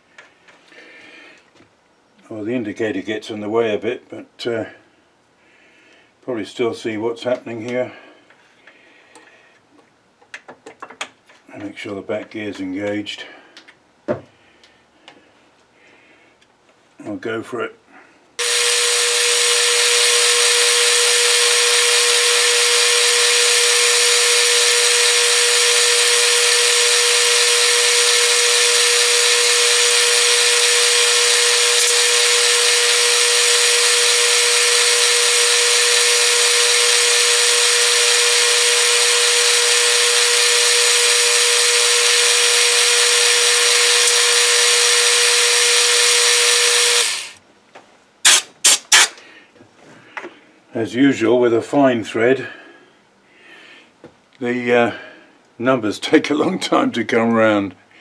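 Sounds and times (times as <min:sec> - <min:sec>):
metal lathe whining: 0:18.4 - 0:47.4.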